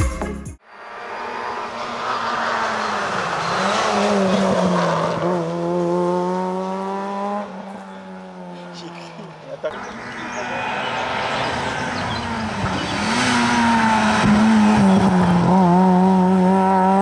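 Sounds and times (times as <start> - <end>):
rally car engine at high revs: 0.8 - 17.0.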